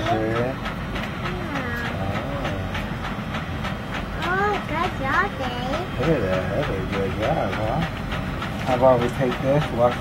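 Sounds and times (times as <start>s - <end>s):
faint regular ticking: 0.1s - 10.0s.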